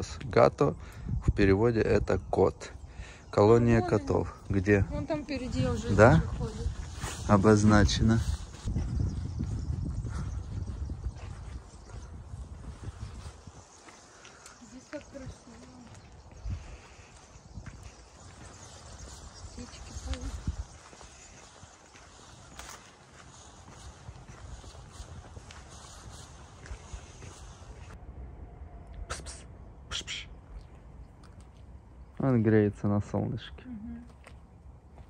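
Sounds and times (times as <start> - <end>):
wind rumbling on microphone: 0.0 - 33.4
footsteps on paved path: 3.8 - 28.0, 33.9 - 35.0
low rumble: 26.8 - 32.2.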